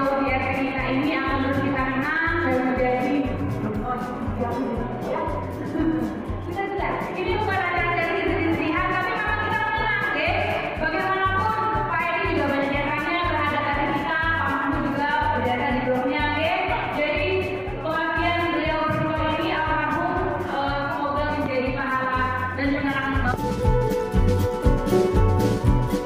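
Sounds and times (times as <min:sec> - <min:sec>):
low beat: 0:00.0 - 0:15.6, 0:16.2 - 0:26.0.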